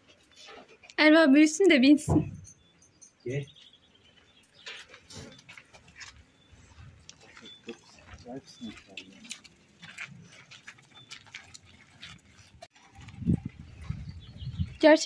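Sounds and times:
footsteps on cobbles: 0:03.6 - 0:15.0.

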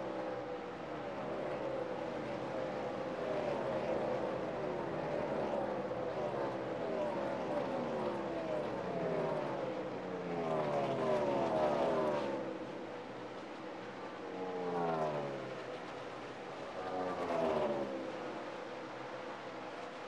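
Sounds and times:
race cars passing at speed: 0:00.1 - 0:19.9.

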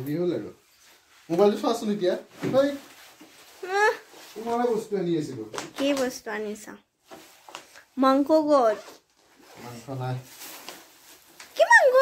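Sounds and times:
bag zipper pulled open: 0:08.6 - 0:09.8.

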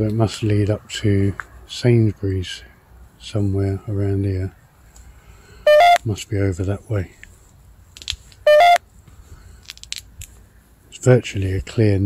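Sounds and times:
two-tone electronic beep: 0:05.7 - 0:06.0, 0:08.5 - 0:08.8.

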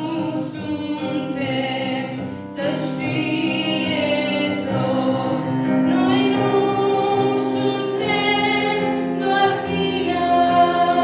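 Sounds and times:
sustained instrumental accompaniment: 0:00.0 - 0:11.0
woman singing into microphone: 0:00.0 - 0:11.0.

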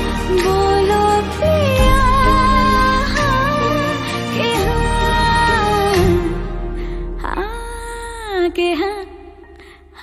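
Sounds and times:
film song instrumental backing: 0:00.0 - 0:07.8.

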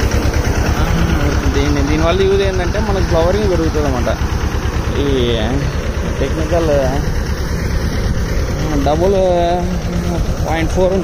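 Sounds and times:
crop sprayer engine running: 0:00.0 - 0:11.0
man speaking: 0:00.8 - 0:04.2.

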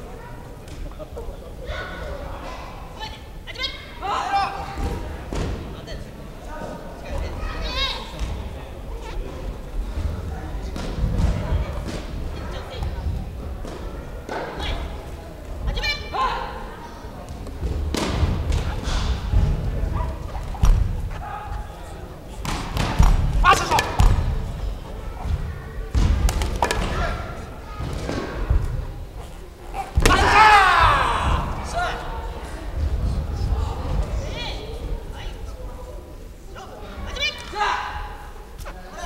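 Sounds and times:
high-pitched shouting voices: 0:29.8 - 0:32.1.

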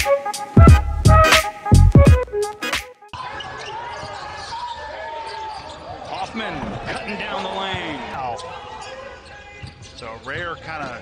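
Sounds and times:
sneaker squeaks on floor: 0:03.3 - 0:07.0, 0:07.7 - 0:11.0.

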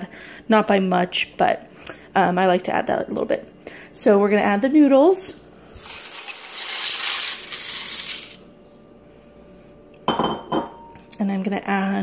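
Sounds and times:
dry noodles clattering into pot: 0:05.8 - 0:08.4.

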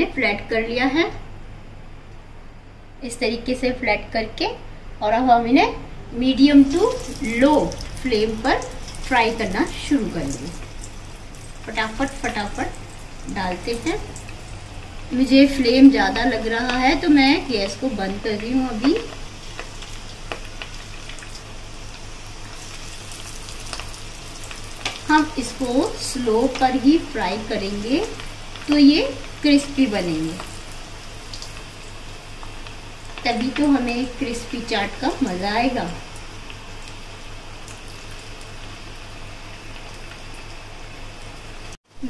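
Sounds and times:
food deep-frying in oil: 0:06.2 - 0:42.0
oil popping and crackling: 0:06.6 - 0:15.2, 0:16.0 - 0:40.6.

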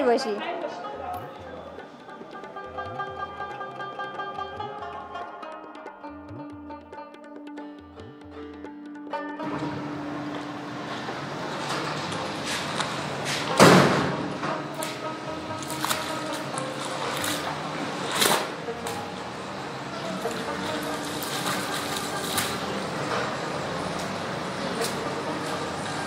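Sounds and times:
faint music: 0:00.0 - 0:05.2, 0:09.4 - 0:26.0
wet cloth squelches and slaps: 0:14.8 - 0:19.0.

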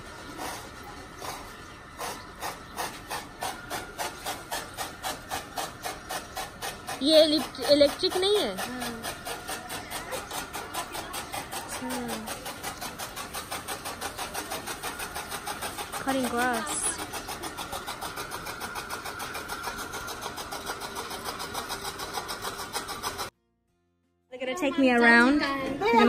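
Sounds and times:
voices talking: 0:06.8 - 0:18.9.

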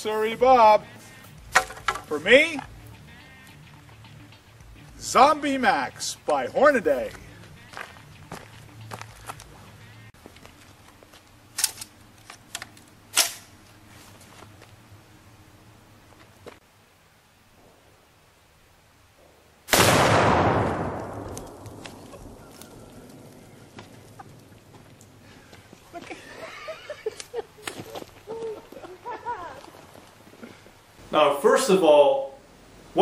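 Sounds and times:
rifle shot: 0:19.7 - 0:22.4.

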